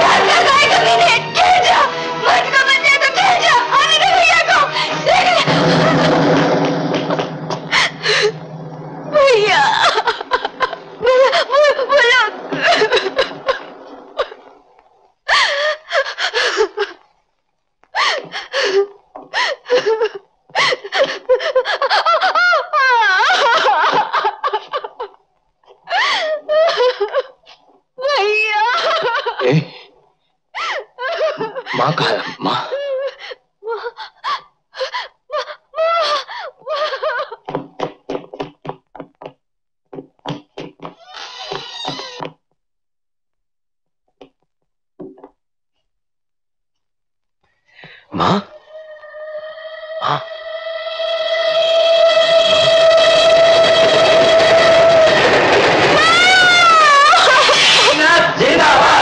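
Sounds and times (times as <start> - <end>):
person gasping: 47.7 - 48.6
woman crying out in panic: 48.7 - 58.0.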